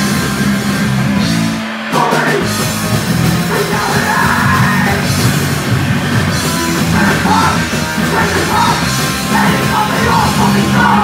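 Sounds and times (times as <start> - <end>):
punk band playing: 0.0 - 11.0
vocalist yelling: 3.5 - 5.1, 6.9 - 11.0.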